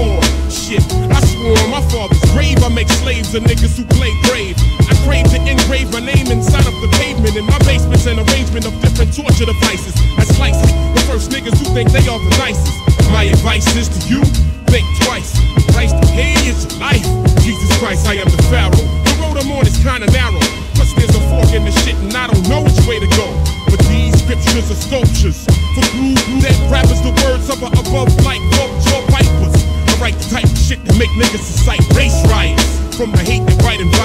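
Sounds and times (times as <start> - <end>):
heavy repeating bass line: 0.0 - 34.0
rapping over a drum beat: 0.0 - 34.0.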